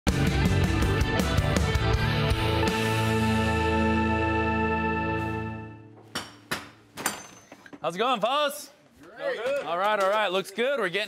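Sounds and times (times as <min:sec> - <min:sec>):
hammer striking nails in wood: 0:06.0 - 0:07.6.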